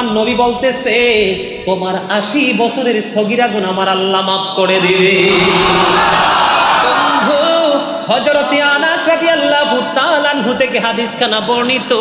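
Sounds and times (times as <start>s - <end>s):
man chanting through microphone: 0.0s - 6.2s.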